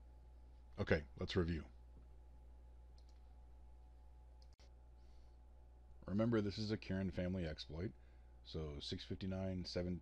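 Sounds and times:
steady low hum: 0.0 - 10.0
faint clicks: 2.9 - 3.3, 4.4 - 4.7.

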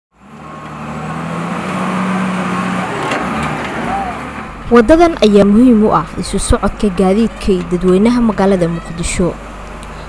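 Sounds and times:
wheel loader diesel engine droning: 0.2 - 10.0.

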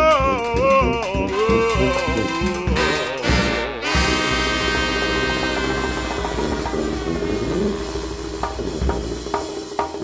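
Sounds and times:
sustained brass chord: 1.7 - 8.9
low drum rumble: 4.0 - 9.9.

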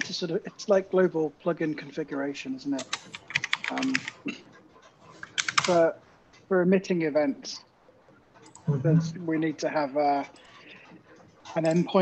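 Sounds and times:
computer keyboard keystrokes: 2.8 - 4.2, 5.2 - 5.8
man speaking syllable: 8.7 - 10.3.

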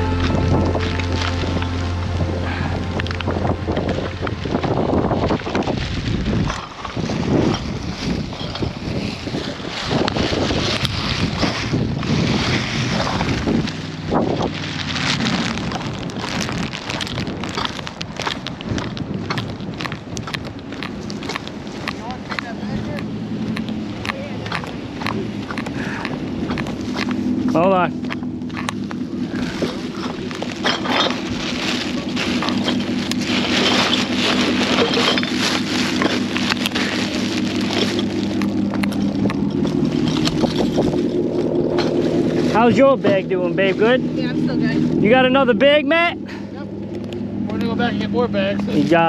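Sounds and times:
footsteps crunching in dry sand: 0.0 - 45.9
wind buffeting microphone: 0.0 - 49.0.

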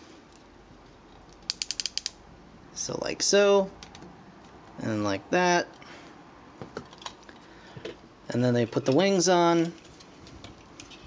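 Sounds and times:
plastic ratchet joint clicking: 1.4 - 2.2.

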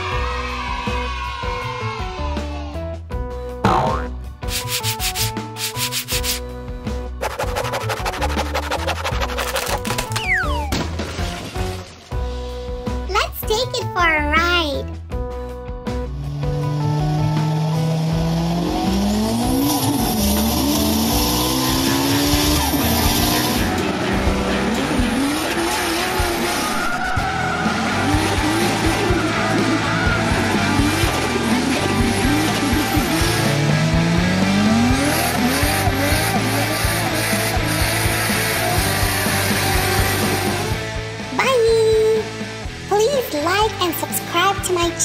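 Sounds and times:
music: 0.0 - 45.0
racing car engines revving: 16.1 - 41.2.

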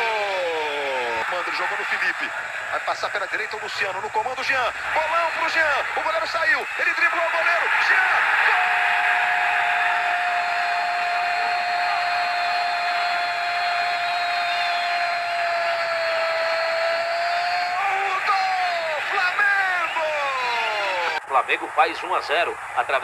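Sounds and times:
stadium crowd cheering: 0.0 - 23.0
commentator shouting goal: 15.7 - 21.2.

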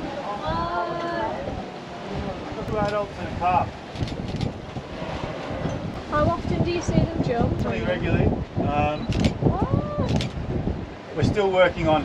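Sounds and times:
boat engine rumble: 0.0 - 12.0
hull on choppy water: 0.0 - 12.0
wind buffeting microphone: 0.0 - 12.0.

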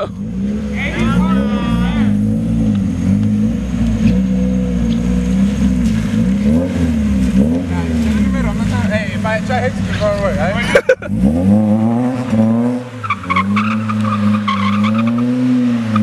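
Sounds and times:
car engine revving: 0.0 - 16.0.

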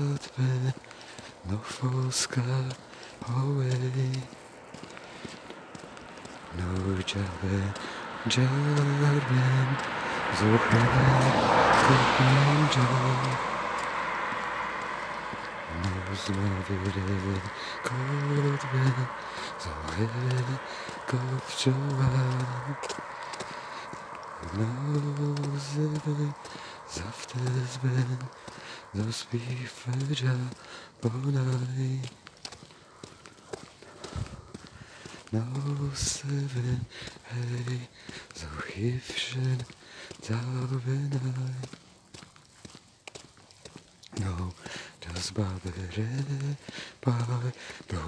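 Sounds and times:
footsteps on snow: 0.0 - 48.0
car tyres hissing past: 0.2 - 31.3.

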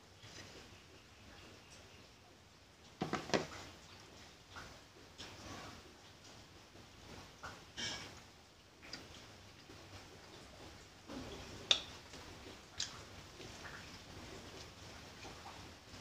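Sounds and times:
chewing toasted bread: 4.5 - 16.0.

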